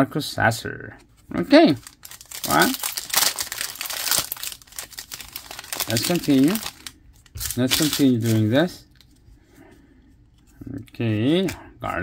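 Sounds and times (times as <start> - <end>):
foil wrapper tearing and crinkling: 1.8 - 8.5.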